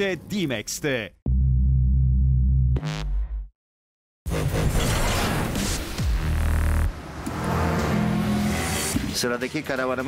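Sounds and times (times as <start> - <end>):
deep synthesizer bass tone: 1.2 - 3.5.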